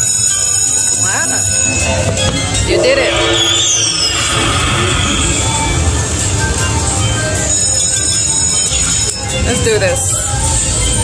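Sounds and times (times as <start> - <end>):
short electronic tones: 2.6 - 6.5
rushing sound effect: 2.6 - 7.5.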